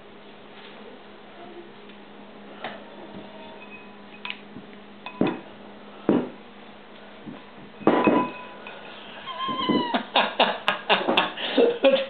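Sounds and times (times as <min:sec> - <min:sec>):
parrot meow-like call: 0:09.2 - 0:10.0.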